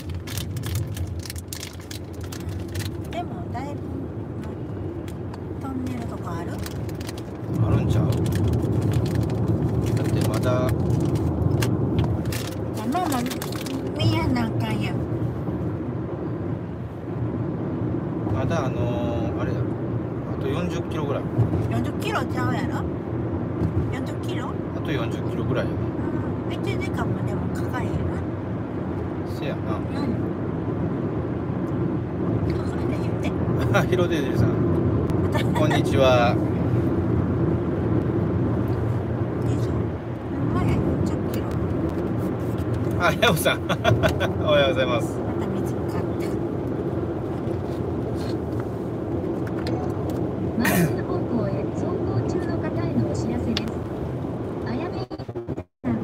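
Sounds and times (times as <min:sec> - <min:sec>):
road and engine rumble: 0:00.0 - 0:56.0.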